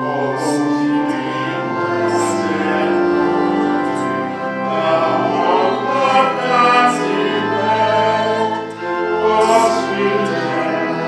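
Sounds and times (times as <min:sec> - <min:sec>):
choir singing church music: 0:00.0 - 0:11.0.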